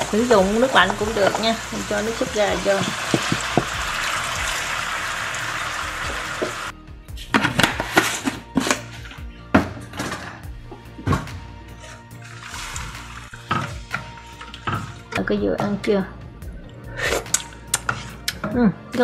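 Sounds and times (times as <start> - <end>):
liquid sizzling in a hot pan: 0.0 - 6.7, 11.8 - 14.9
background music: 0.0 - 19.0.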